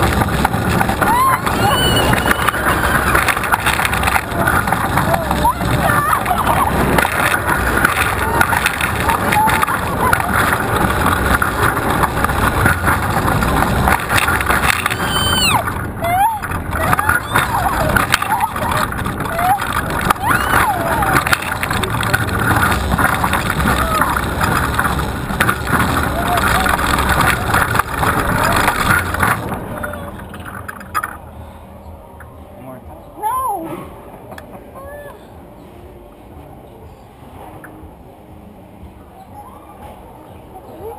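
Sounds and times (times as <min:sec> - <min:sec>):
riders' voices: 0:00.0 - 0:30.6
roller coaster rumbling on track: 0:00.0 - 0:40.9.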